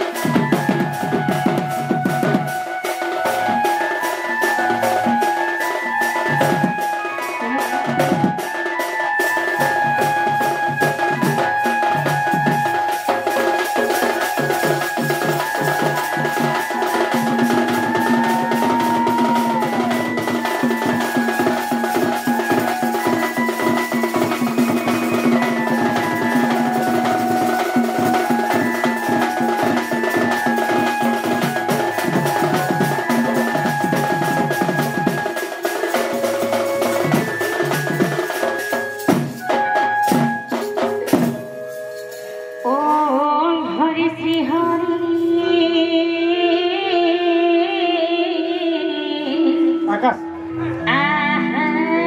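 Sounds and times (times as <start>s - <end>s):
woman singing into a microphone: 6.7s - 8.4s, 14.8s - 23.5s, 42.6s - 50.0s, 50.6s - 52.0s
fast dense drumming: 10.5s - 39.4s.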